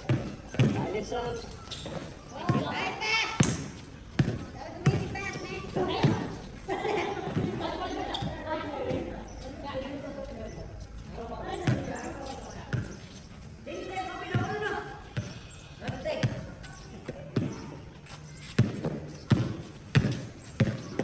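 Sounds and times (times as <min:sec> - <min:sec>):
basketball bouncing on pavement: 0:00.0 - 0:21.0.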